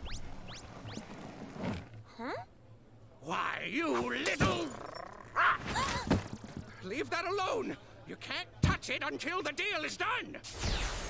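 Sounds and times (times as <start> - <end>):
rising whistle-like zips: 0.0 - 1.2.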